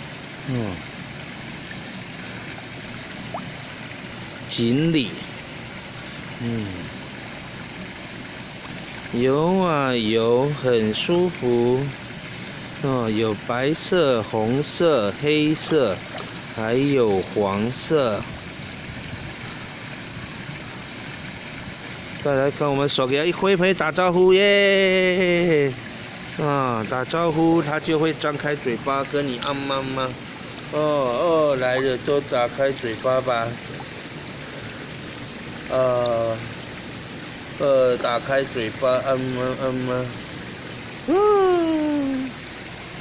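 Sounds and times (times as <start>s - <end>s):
flowing water in a pond: 0.0s - 43.0s
person making short vocal sounds: 0.5s - 0.8s, 6.4s - 6.9s, 41.1s - 42.4s.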